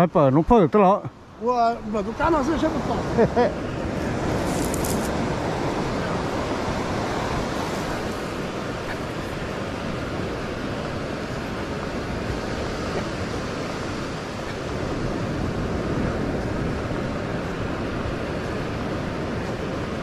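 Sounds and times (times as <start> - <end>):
ocean surf breaking on sand: 0.0 - 20.0
wind on microphone: 1.3 - 20.0.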